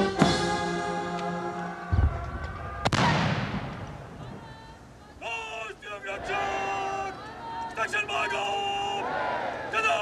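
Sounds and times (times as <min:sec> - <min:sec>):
brass band chord: 0:00.0 - 0:01.9
cannon shot echoing: 0:02.8 - 0:04.2.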